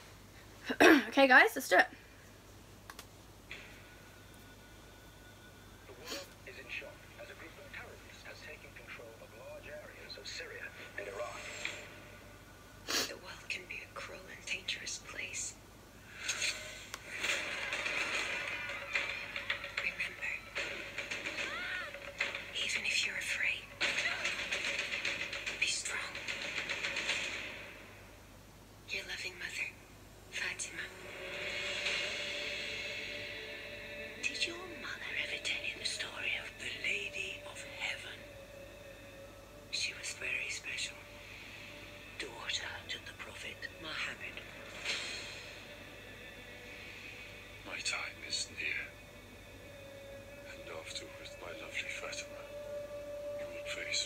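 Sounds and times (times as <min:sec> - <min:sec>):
faint steady drone tone: 0:03.3 - 0:54.0
whispered voices: 0:05.9 - 0:11.9, 0:12.9 - 0:15.6, 0:19.8 - 0:20.5, 0:22.6 - 0:24.3, 0:25.5 - 0:26.3, 0:34.2 - 0:38.4, 0:39.7 - 0:41.2, 0:42.2 - 0:44.5, 0:47.6 - 0:49.0, 0:50.5 - 0:52.5, 0:53.4 - 0:54.0.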